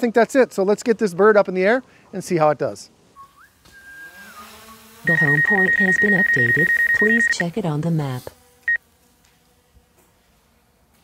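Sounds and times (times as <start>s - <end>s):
drone propellers whining: 3.4s - 7.5s.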